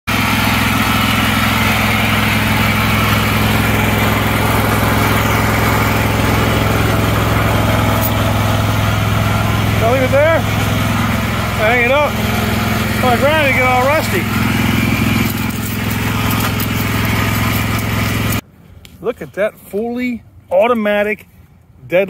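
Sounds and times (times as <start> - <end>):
small petrol engine idling: 0.1 - 18.4.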